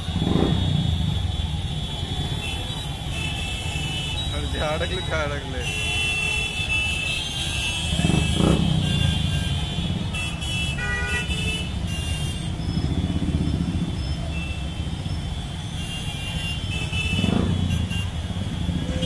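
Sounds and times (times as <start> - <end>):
motorcycles running together: 0.0 - 1.4, 7.9 - 10.2, 11.7 - 15.2, 17.0 - 19.0
horns honking: 0.0 - 19.0
motorcycle revving: 0.0 - 19.0.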